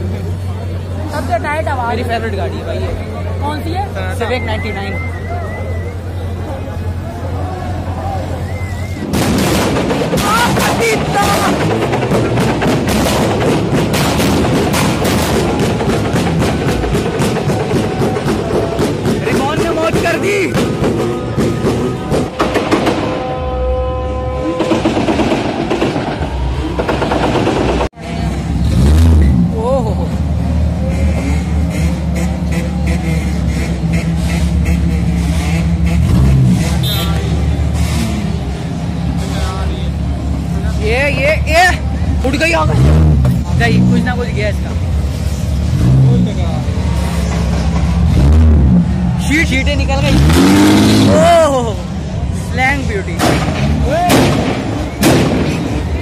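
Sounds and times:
exhaust popping and crackling: 8.5s - 28.0s
car engine revving: 24.5s - 56.0s.

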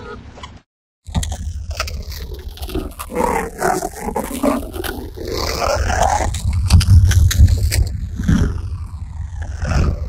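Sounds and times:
distorted voice-like sounds: 1.1s - 10.0s
loud low hum: 1.1s - 10.0s.

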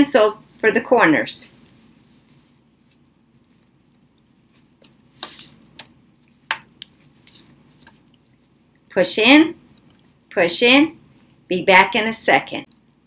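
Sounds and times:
cloth rustling: 1.6s - 8.6s.

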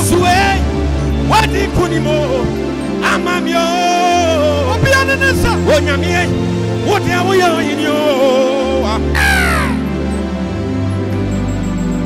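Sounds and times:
gospel backing chords and bass: 0.0s - 12.0s
falling vocal wail: 9.1s - 10.0s.

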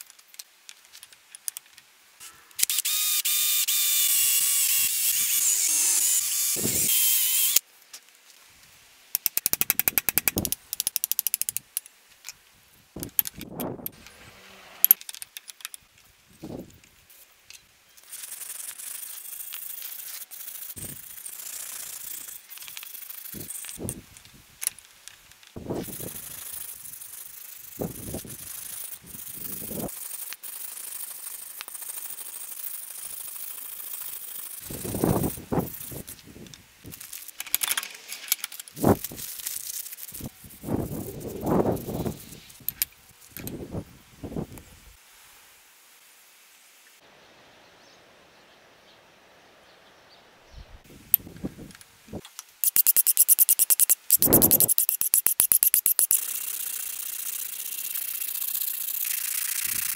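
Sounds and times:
electric drill boring into wood: 2.6s - 7.6s
steady hiss: 15.8s - 49.6s, 50.4s - 59.9s
rapid clicking: 52.6s - 59.9s.

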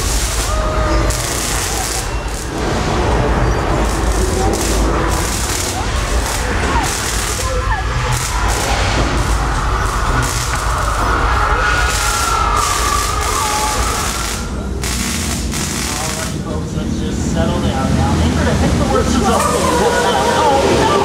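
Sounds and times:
crashes: 0.0s - 16.9s
deep earthquake rumble: 0.0s - 19.2s.

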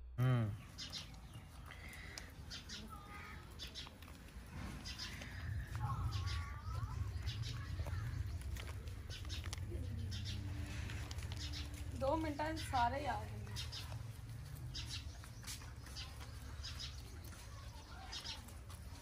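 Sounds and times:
bird calls: 0.5s - 19.0s
rabbits chewing crunchily: 0.6s - 19.0s
low rumble: 4.0s - 15.2s.

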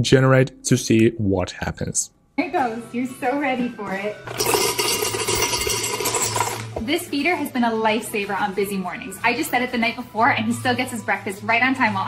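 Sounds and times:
kibble rattling into bowl: 4.3s - 6.7s.

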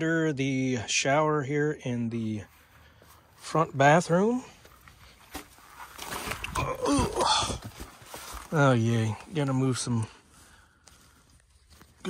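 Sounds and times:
faint handling noise: 2.5s - 6.6s, 7.6s - 12.0s.

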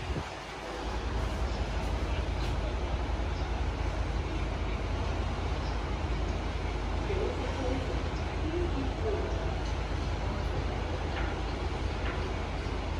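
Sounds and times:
low background rumble: 0.0s - 12.9s
faint distant voices: 0.2s - 12.9s.

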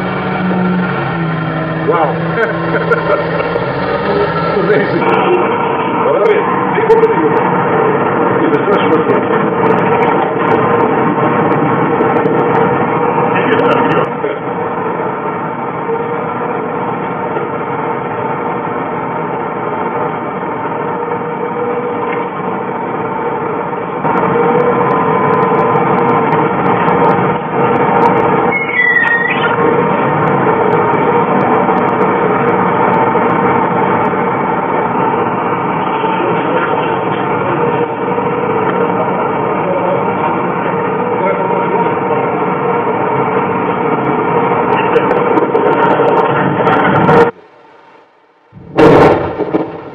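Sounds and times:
excavator diesel engine and hydraulics: 0.0s - 49.9s
brief high squeal: 28.5s - 29.6s.

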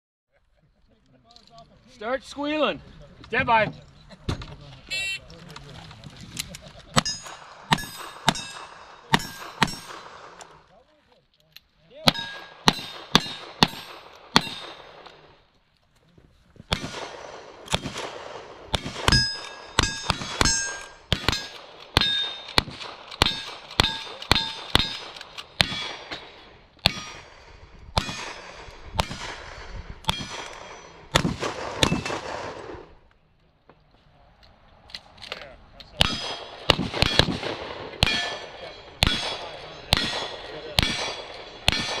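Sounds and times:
steel target ringing: 7.0s - 10.1s, 12.1s - 15.0s, 19.1s - 22.5s, 38.0s - 42.0s
gunshots: 7.0s - 10.7s, 12.0s - 15.4s, 16.7s - 33.0s, 36.0s - 42.0s.

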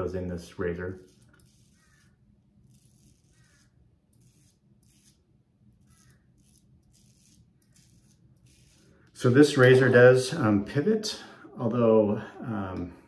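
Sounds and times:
razor scraping stubble: 0.7s - 10.6s.

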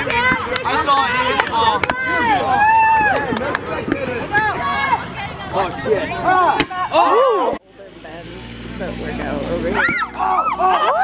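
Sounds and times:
players shouting: 0.0s - 7.6s, 9.5s - 11.0s
dodgeball thump: 9.8s - 10.2s.

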